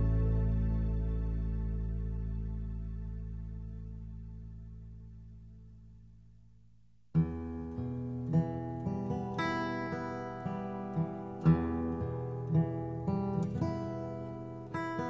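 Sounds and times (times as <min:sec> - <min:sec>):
strummed acoustic guitar: 0:07.2 - 0:15.0.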